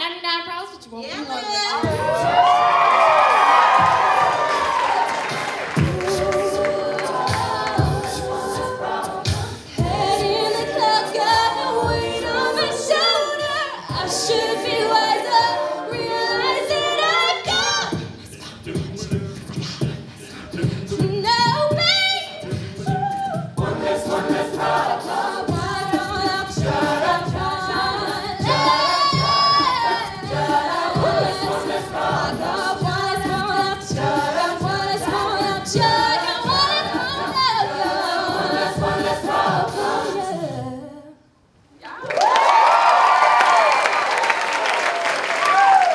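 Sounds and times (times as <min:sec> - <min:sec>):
vocal percussion beat: 0:01.7 - 0:40.5
audience cheering and applause: 0:01.8 - 0:08.1, 0:41.8 - 0:45.9
a cappella group singing: 0:01.8 - 0:41.4.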